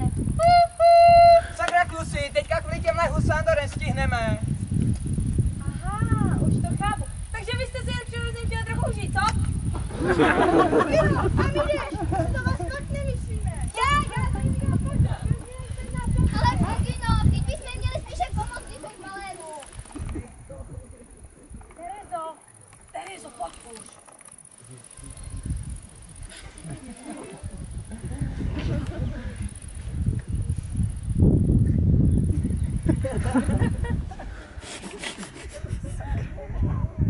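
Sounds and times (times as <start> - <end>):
wind rumble on microphone: 0.0 - 18.9, 19.7 - 22.1, 25.0 - 37.0
faint voices talking: 10.8 - 29.8
child's voice calling: 11.4 - 19.7.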